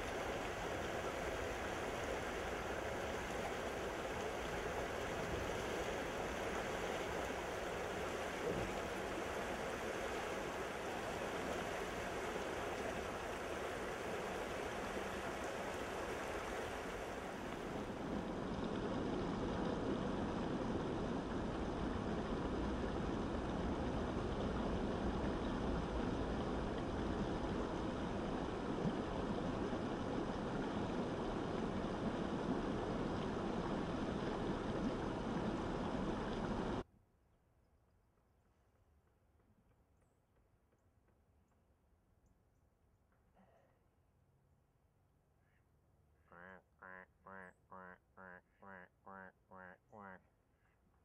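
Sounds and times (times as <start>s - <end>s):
river water rushing over rocks: 0.0s - 18.5s.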